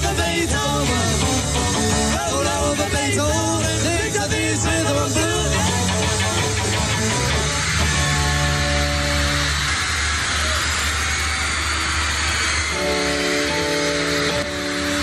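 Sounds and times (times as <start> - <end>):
bass: 0.0 - 15.0
drums: 0.0 - 15.0
electric guitars: 0.0 - 15.0.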